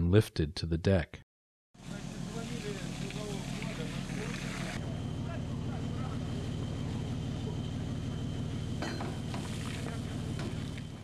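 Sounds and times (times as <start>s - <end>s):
faint voices: 1.8s - 8.4s
ship engine droning: 1.8s - 11.0s.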